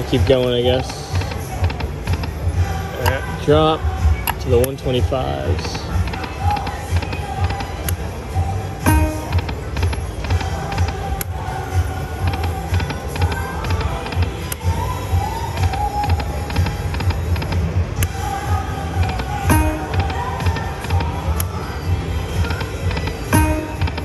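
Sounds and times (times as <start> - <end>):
sharp clicks: 0.8 - 2.4, 6.0 - 8.0, 12.2 - 14.6, 15.6 - 18.2
slot machine electronic music: 4.3 - 24.0.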